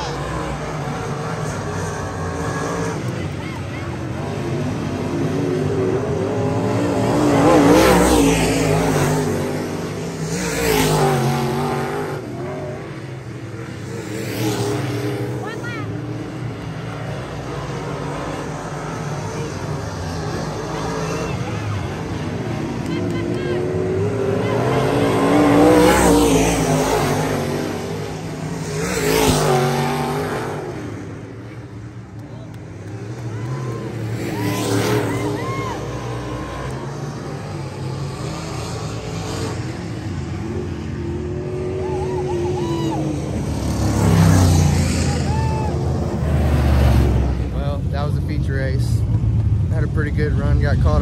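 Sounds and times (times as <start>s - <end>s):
race car engines passing by: 0.0s - 51.0s.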